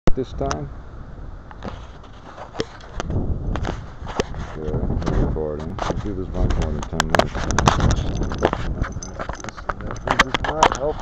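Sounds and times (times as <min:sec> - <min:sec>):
fingers rubbing near microphone: 0:01.5 - 0:11.0.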